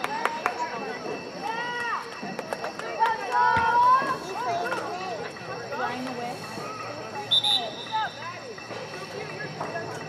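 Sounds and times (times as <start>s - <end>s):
voices calling and shouting: 0.0s - 10.0s.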